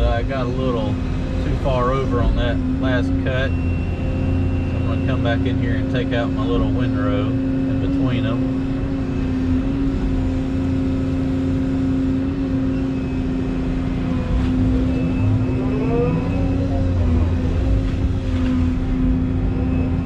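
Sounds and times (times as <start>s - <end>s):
excavator diesel engine running: 0.0s - 20.0s
hydraulic whine: 0.0s - 20.0s.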